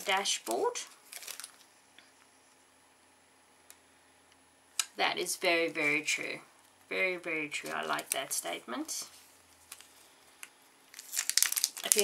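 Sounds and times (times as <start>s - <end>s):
paper packaging crinkling: 0.0s - 1.7s, 7.5s - 8.3s, 9.1s - 12.0s.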